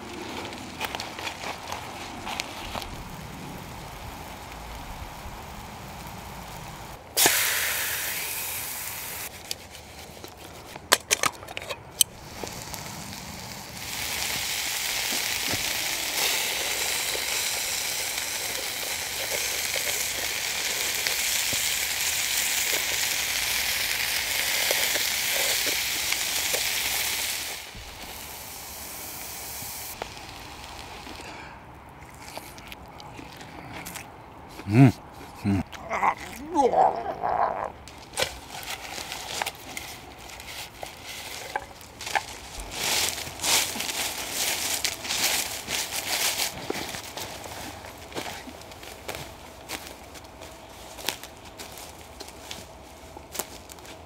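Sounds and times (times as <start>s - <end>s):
food sizzling in a pan: 12.3s - 31.1s.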